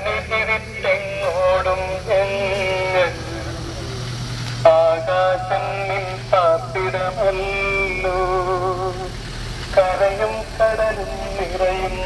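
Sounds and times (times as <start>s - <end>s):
person singing: 0.0s - 12.0s
vehicle engine humming: 0.0s - 12.0s.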